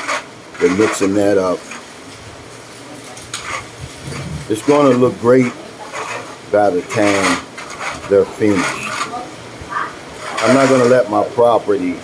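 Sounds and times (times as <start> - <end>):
trowel scraping wet mix: 0.0 - 2.0, 3.3 - 9.3, 10.2 - 11.6
steady hiss: 0.0 - 12.0.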